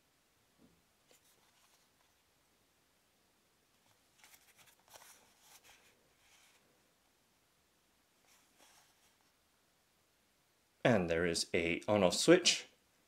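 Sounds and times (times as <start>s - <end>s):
plastic rustling and scraping: 3.9s - 6.7s.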